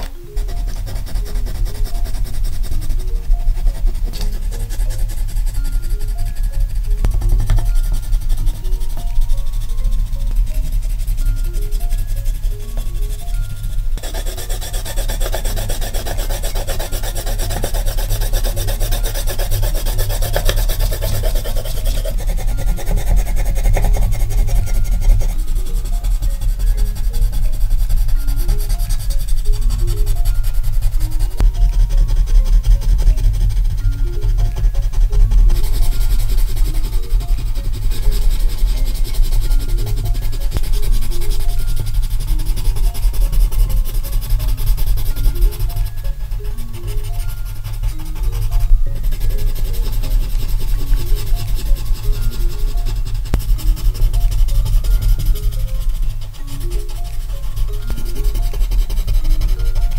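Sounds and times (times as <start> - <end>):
crayon scribbling on paper: 0.0 - 59.9
light music: 0.0 - 59.9.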